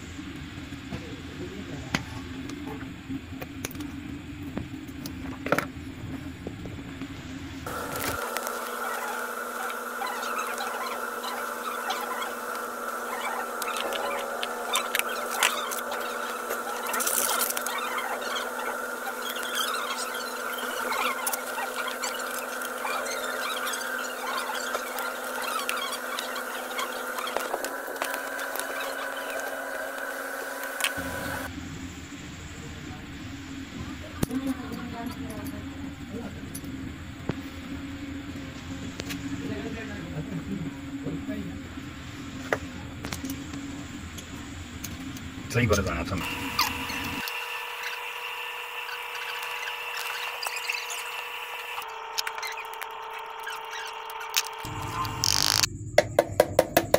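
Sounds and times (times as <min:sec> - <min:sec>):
steady hum of held tones: 0:00.0 - 0:56.9.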